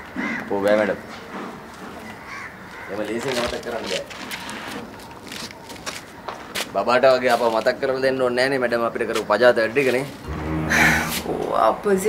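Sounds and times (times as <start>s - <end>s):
crow cawing: 0.2s - 0.5s, 2.1s - 3.1s.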